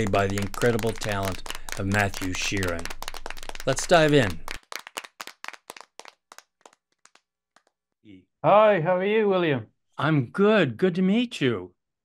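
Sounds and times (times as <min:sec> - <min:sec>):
sharp claps: 0:00.0 - 0:07.8.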